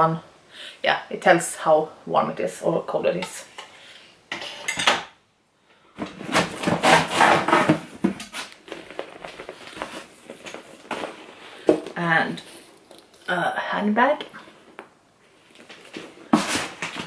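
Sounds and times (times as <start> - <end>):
handbag rustling and knocking: 6.0 - 13.3.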